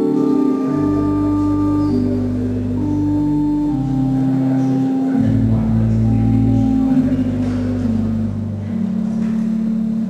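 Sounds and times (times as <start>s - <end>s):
deep organ pedal bass: 0.0s - 10.0s
pipe organ chords: 0.0s - 10.0s.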